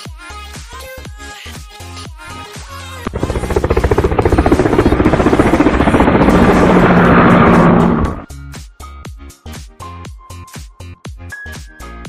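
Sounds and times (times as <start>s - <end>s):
loud rapidly pulsing buzz: 3.1s - 8.3s.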